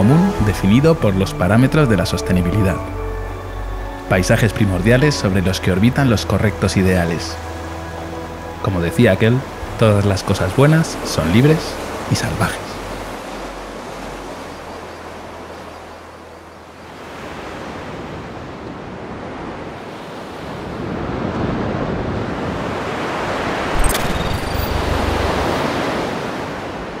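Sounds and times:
ocean waves over rocks: 0.0s - 27.0s
sharp click: 23.7s - 24.8s.

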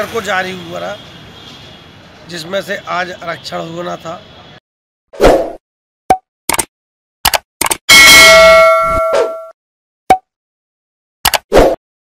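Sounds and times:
sharp clicks and pops: 6.1s - 7.9s, 11.2s - 11.6s
loud ringing chime: 7.9s - 9.5s.

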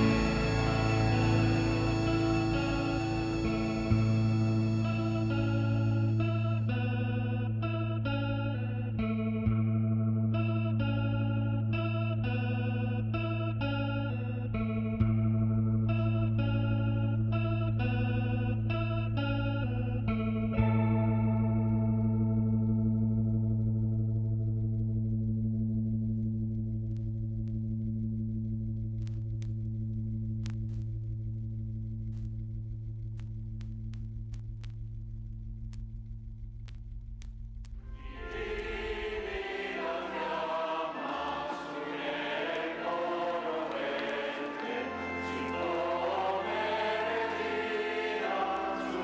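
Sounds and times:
low drone: 0.0s - 7.6s, 36.2s - 49.0s
electric guitar picking notes: 0.0s - 28.2s, 37.8s - 49.0s.

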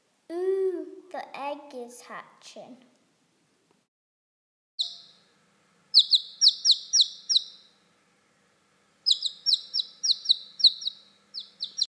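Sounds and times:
chick cheeping: 4.8s - 5.3s, 5.9s - 7.8s, 9.0s - 11.9s.

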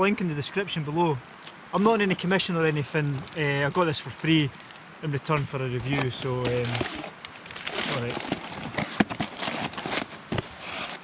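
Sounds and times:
packaging rustling and crinkling: 2.9s - 3.8s, 4.5s - 4.8s, 5.8s - 11.0s.

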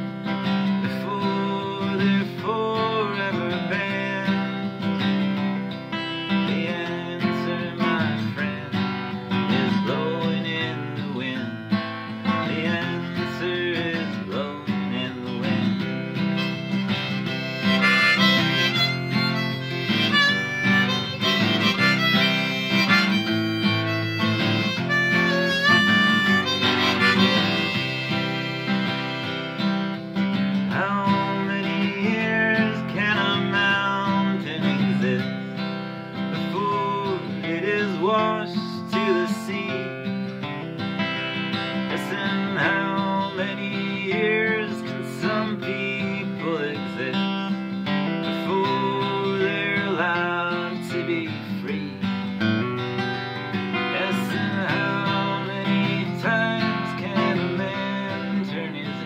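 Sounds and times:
acoustic guitar strumming: 0.0s - 59.0s
wavering melody line: 16.4s - 29.6s.

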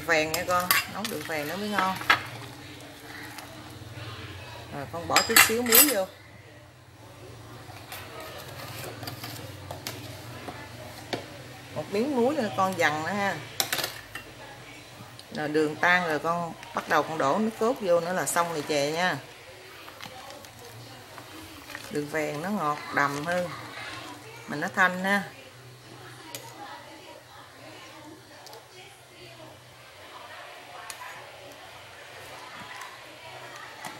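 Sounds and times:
faint background voices: 0.0s - 33.9s
pot boiling: 0.0s - 33.9s.

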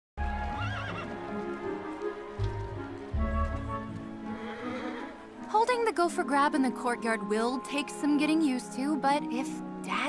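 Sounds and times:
background music: 0.2s - 10.0s
horse whinnying: 0.3s - 1.3s, 4.2s - 5.3s.

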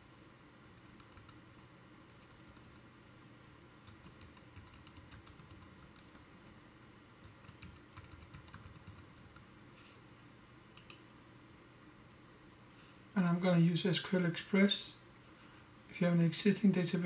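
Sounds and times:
faint computer keyboard typing: 0.6s - 9.5s, 10.7s - 11.0s.

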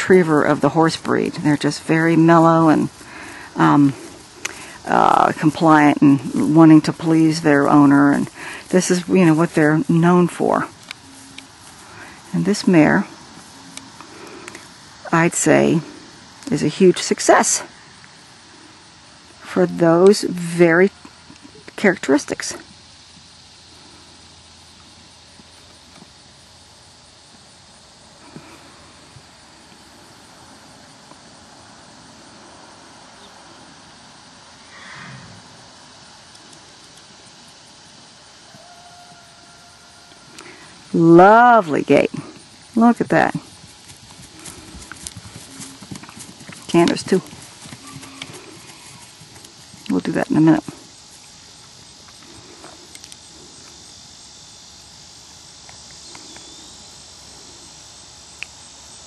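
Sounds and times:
insects chirping: 0.0s - 59.0s
outdoor background noise: 0.0s - 59.0s
faint ticks: 10.8s - 12.0s, 36.2s - 37.6s, 43.8s - 50.0s, 51.2s - 53.8s, 55.6s - 56.6s
faint hoofbeats: 42.2s - 53.8s.

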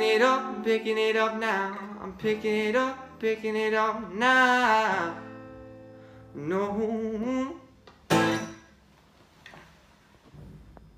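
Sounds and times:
acoustic guitar chord: 0.0s - 7.5s, 8.1s - 8.7s.

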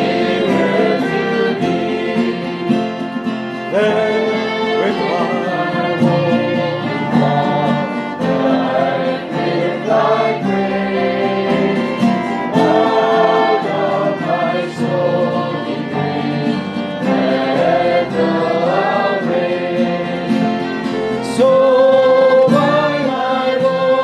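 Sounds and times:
acoustic guitar strumming: 0.0s - 24.0s
voices singing along: 0.0s - 24.0s
man singing worship song: 3.7s - 16.0s, 21.2s - 24.0s.

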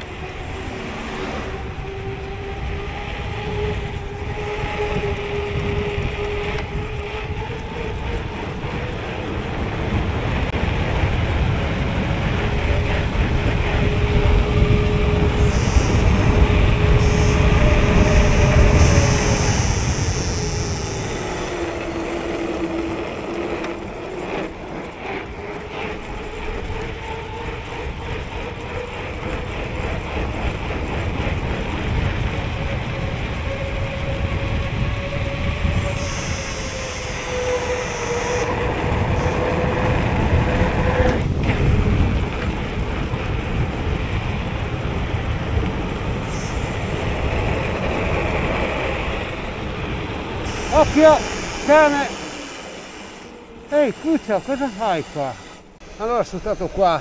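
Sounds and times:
tyres rumbling on asphalt: 0.0s - 57.0s
wind on microphone: 0.0s - 57.0s
faint steady whine: 3.7s - 57.0s.

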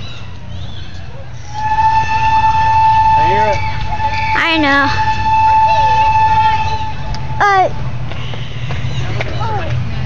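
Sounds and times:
train whistle blowing: 1.4s - 7.6s
low rumble: 1.4s - 9.1s.

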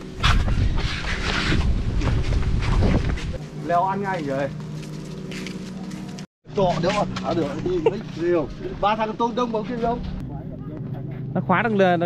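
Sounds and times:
wind buffeting microphone: 0.0s - 3.4s.

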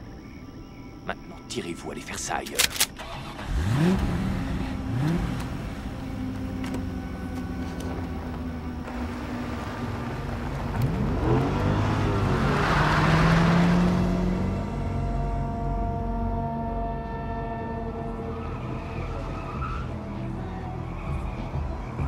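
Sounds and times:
car engine revving: 3.0s - 17.0s.

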